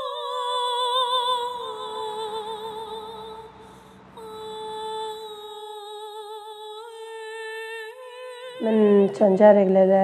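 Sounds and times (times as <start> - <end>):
woman humming a long note: 4.2 - 9.3.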